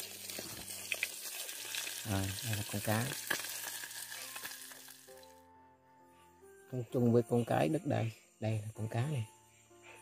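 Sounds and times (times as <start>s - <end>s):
wood fire crackling and hissing: 0.0s - 5.4s.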